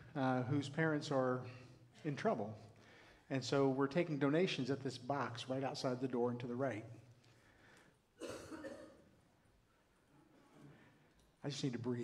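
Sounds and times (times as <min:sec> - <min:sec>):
man coughing: 0:08.2 - 0:09.1.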